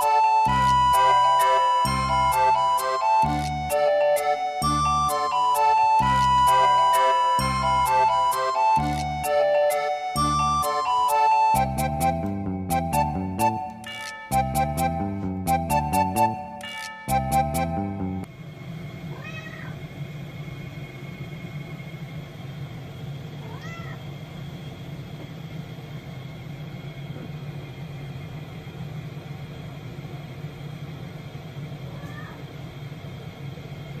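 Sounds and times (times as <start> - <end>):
cat meowing: 19.1 - 19.8, 23.4 - 24.0, 31.9 - 32.4.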